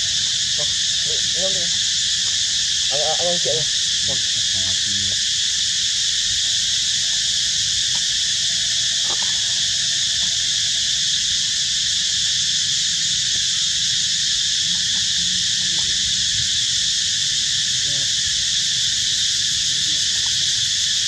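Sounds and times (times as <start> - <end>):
insect chorus drone: 0.0 - 21.0.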